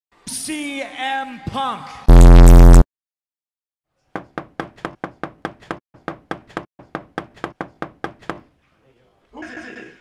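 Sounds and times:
rapid knocking on a door: 4.2s - 8.5s.

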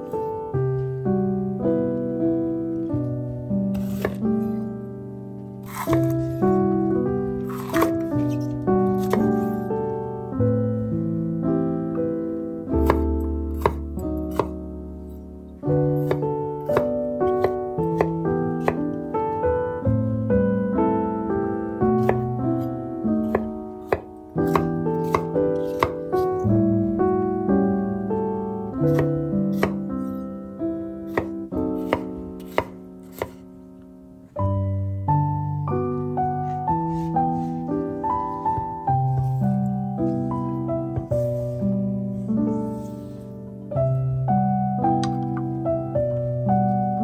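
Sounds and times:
piano background music: 0.0s - 47.0s
knife chopping on wooden board: 3.8s - 4.2s, 5.6s - 6.4s, 7.5s - 9.4s, 12.8s - 14.6s, 16.0s - 18.9s, 22.0s - 22.2s, 23.2s - 26.3s, 28.9s - 29.8s, 31.1s - 33.4s.

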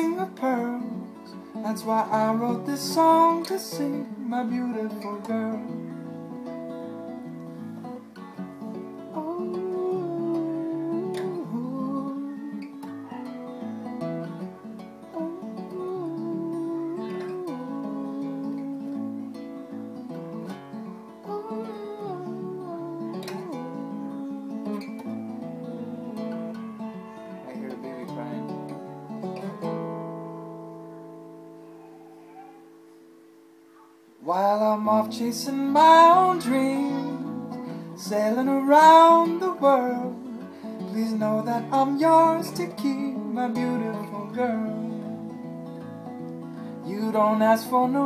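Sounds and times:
wordless singing: 0.0s - 29.6s, 33.7s - 48.0s
acoustic guitar playing: 0.0s - 48.0s.

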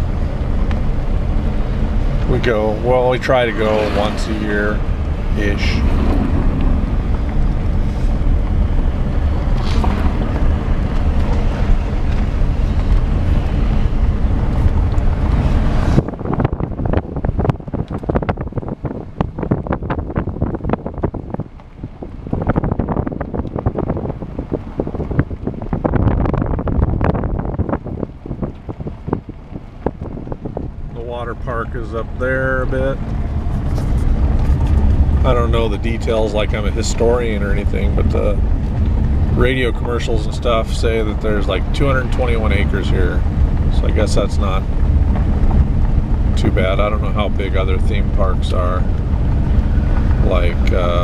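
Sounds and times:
wind noise and road rumble: 0.0s - 51.0s.

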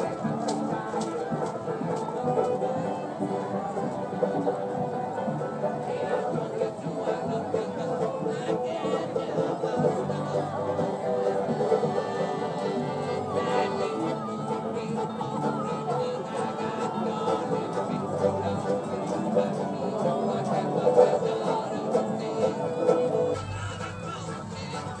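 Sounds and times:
acoustic folk band playing: 0.0s - 25.0s.

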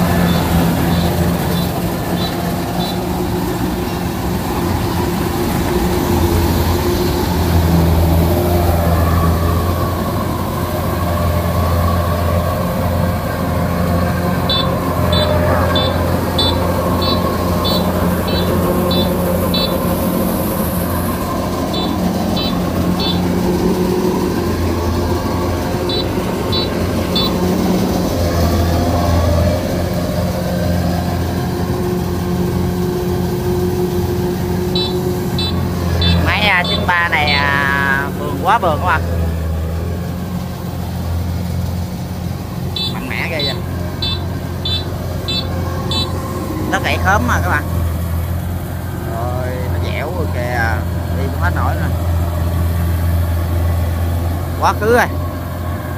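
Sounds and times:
combine harvester drone: 0.0s - 55.9s
faint high ticking: 14.2s - 28.2s, 42.7s - 46.2s.

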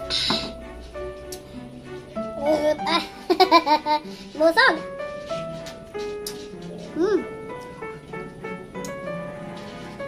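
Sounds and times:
background music with held notes: 0.0s - 10.0s
woman laughing loudly: 3.3s - 4.0s.

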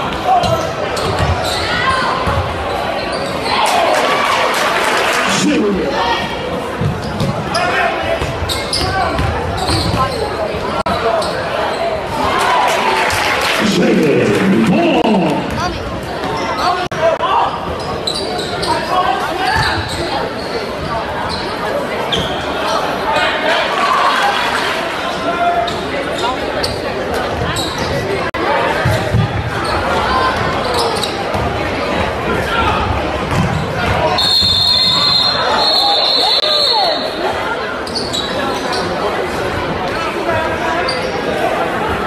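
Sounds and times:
voices of players and spectators: 0.0s - 42.0s.

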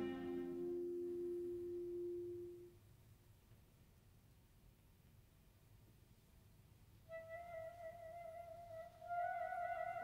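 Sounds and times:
bowed strings holding a note: 0.0s - 2.6s.

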